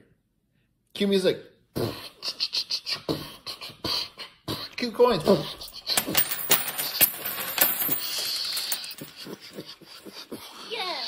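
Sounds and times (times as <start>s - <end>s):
coins clattering on a table: 5.5s - 9.8s
coins spinning with high ringing: 5.7s - 9.6s.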